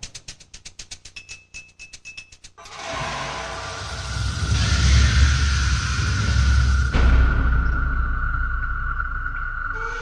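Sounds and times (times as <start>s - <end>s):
fast ticking beat: 0.0s - 2.6s.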